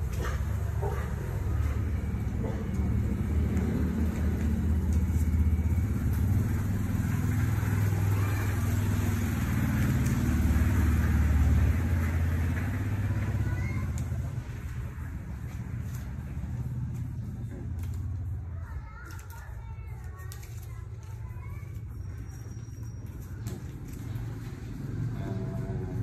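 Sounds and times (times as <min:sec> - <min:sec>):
low engine rumble: 0:00.0 - 0:26.0.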